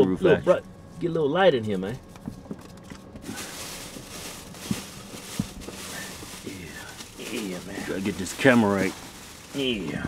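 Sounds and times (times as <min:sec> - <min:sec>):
paper bag rustling and crinkling: 0:02.8 - 0:10.0.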